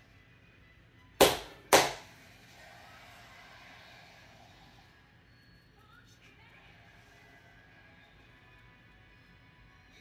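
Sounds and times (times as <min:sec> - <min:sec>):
hand claps: 0:01.2 - 0:02.1.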